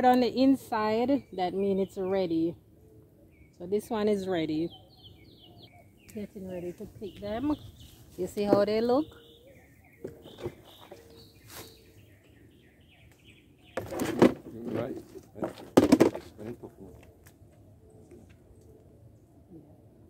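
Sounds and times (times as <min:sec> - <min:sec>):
small bird chirping: 0:01.1 - 0:14.0.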